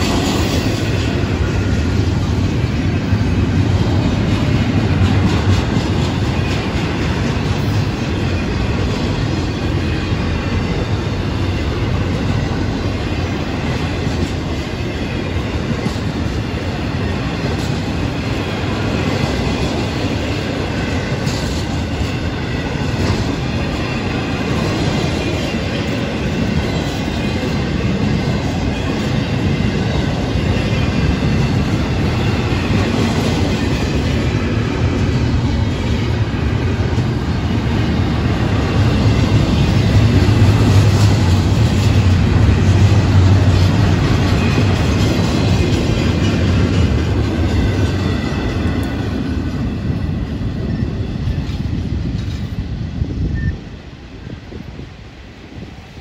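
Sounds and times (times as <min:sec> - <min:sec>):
train wheels clickety-clack: 0:00.0 - 0:56.0.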